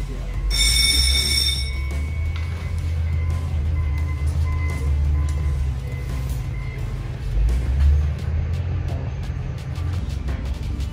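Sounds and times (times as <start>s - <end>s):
background music with bass: 0.0s - 10.9s
high bell-like ringing tone: 0.3s - 2.7s.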